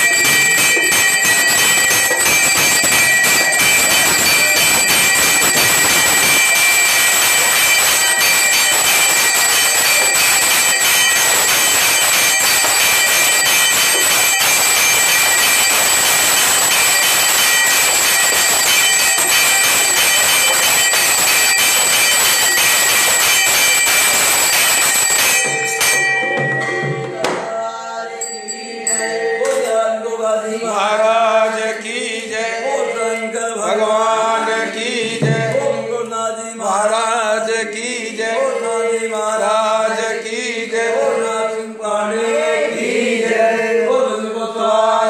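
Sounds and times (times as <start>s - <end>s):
temple bells ringing: 0.0s - 30.2s.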